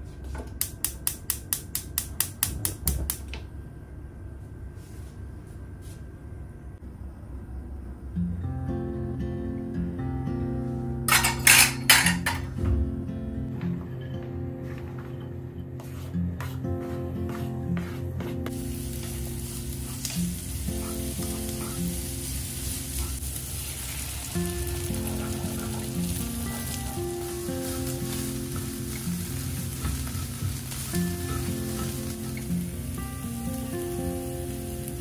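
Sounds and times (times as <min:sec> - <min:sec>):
spatula stirring in skillet: 0:15.8 - 0:33.6
vegetables sizzling in hot oil: 0:18.5 - 0:35.0.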